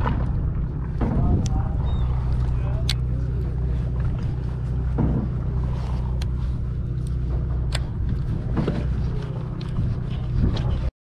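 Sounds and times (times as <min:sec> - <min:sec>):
boat engine droning: 0:00.0 - 0:10.9.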